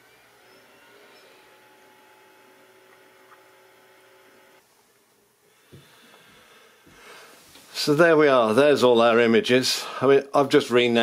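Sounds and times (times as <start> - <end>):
disc drive humming: 0.0 - 4.6.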